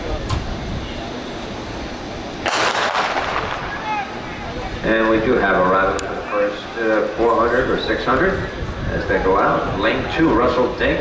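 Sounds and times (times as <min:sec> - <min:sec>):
starter's pistol shot: 0:02.5 - 0:03.7.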